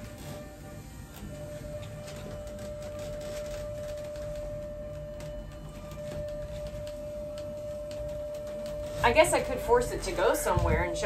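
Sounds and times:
steady single-pitched hum: 0:00.0 - 0:11.0.

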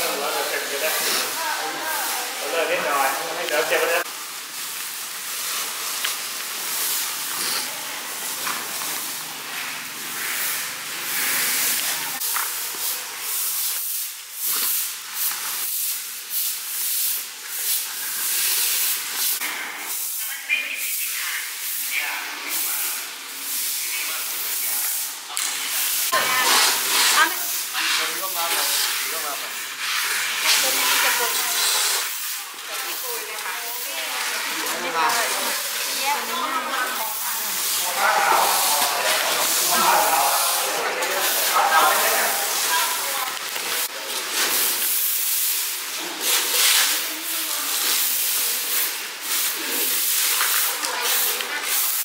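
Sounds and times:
brooms sweeping concrete: 0:00.0 - 0:52.0.

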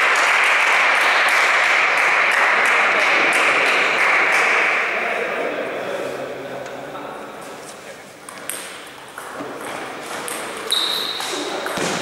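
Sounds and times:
table tennis ball bouncing: 0:08.3 - 0:12.0.

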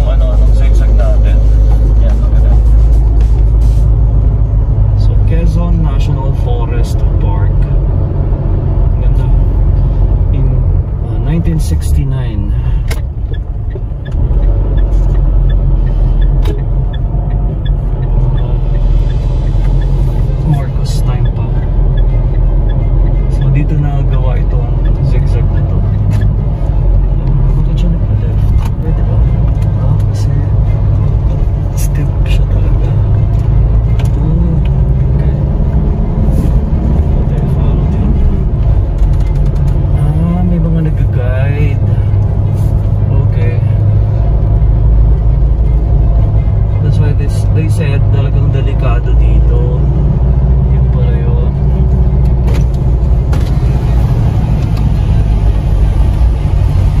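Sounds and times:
car engine and tyres rumbling: 0:00.0 - 0:57.0.

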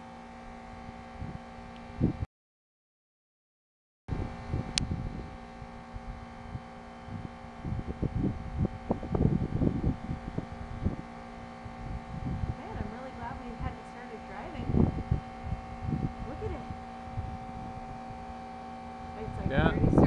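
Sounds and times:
steady hum: 0:00.0 - 0:02.3, 0:04.1 - 0:20.0
gusty wind buffeting microphone: 0:00.8 - 0:02.2, 0:04.1 - 0:20.0.

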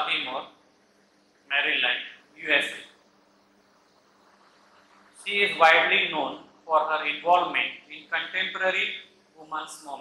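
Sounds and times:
faint steady hiss: 0:00.0 - 0:10.0
low hum: 0:02.1 - 0:07.9.

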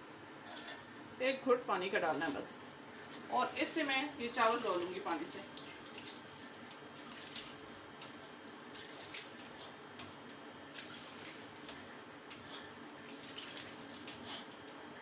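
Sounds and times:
water trickling through colander: 0:03.9 - 0:07.6, 0:13.0 - 0:14.4.

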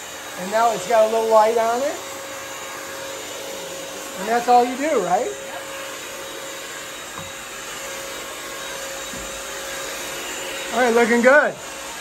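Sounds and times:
wet-dry vacuum whirring: 0:00.0 - 0:12.0.

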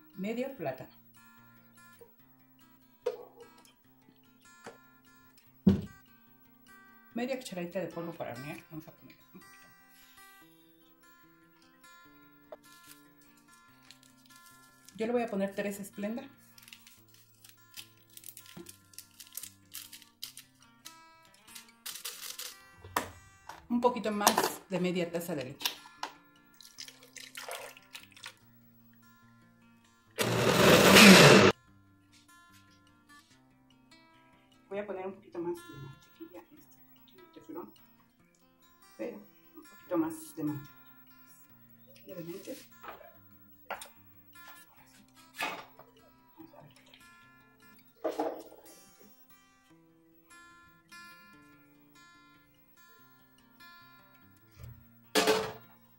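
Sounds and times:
blender running: 0:30.2 - 0:31.5
acoustic guitar melody: 0:37.0 - 0:55.9.

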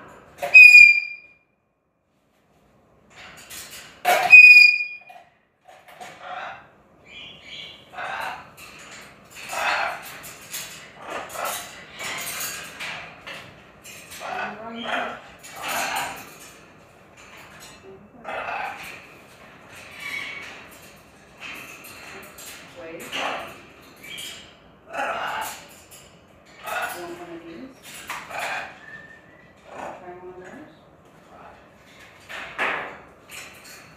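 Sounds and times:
macaw whistling: 0:00.5 - 0:01.2.

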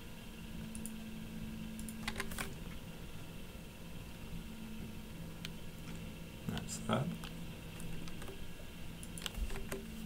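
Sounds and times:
steady low hum: 0:00.0 - 0:10.0
computer keyboard key clicks: 0:01.8 - 0:02.6, 0:09.0 - 0:09.8.

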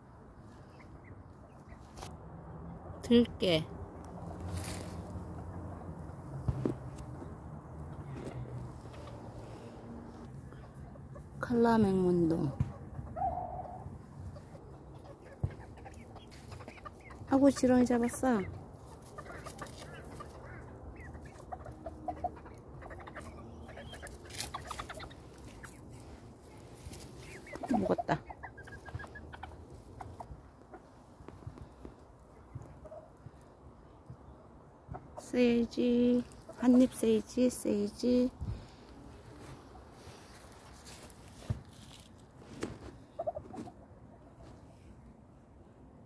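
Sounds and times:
chickens scratching ground: 0:01.5 - 0:02.2, 0:04.0 - 0:10.3, 0:11.2 - 0:33.5, 0:35.3 - 0:44.8
chickens clucking: 0:04.2 - 0:38.3, 0:39.0 - 0:44.6.

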